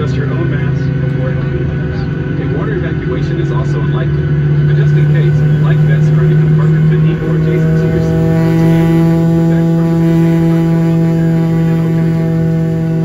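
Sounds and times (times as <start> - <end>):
jet engines idling in cabin: 0.0 - 13.0
steady whining tones: 0.0 - 13.0.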